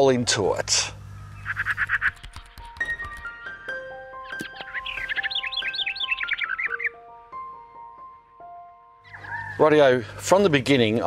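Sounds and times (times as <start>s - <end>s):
bird chirps: 1.3s - 2.5s, 4.2s - 7.0s, 9.0s - 9.6s.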